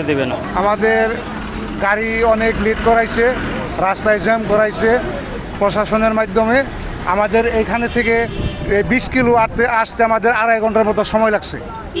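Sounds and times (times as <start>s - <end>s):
low rumble of street noise: 0.0s - 12.0s
man talking into a microphone: 0.0s - 12.0s.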